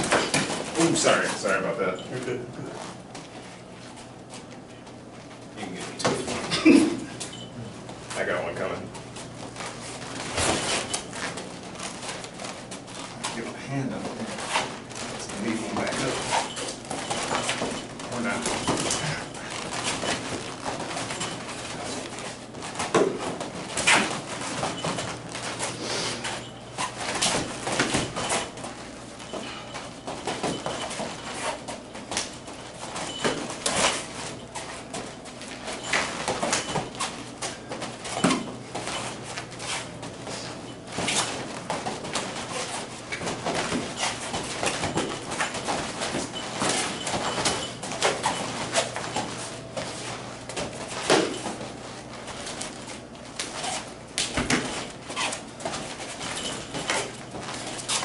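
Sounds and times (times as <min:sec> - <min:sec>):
footsteps scuffing on foam mats: 0:08.9 - 0:58.0.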